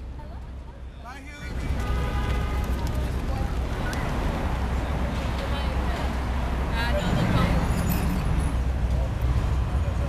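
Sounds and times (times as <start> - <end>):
rumble of passing vehicles: 0.0 - 10.0.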